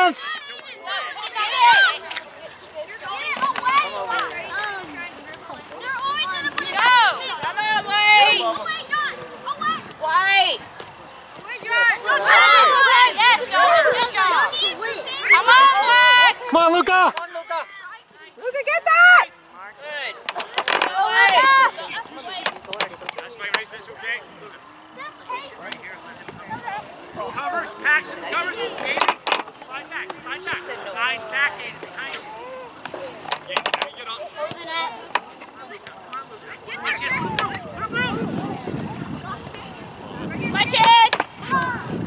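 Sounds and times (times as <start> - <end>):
spectators and players shouting: 0.0 - 42.0
long drawn-out shout: 11.7 - 17.1.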